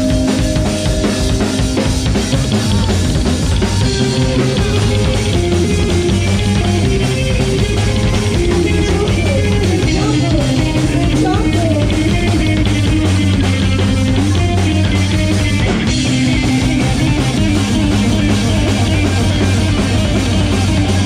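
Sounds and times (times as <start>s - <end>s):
drum kit: 0.0s - 21.0s
electric guitar: 0.0s - 21.0s
upright double bass: 2.3s - 21.0s.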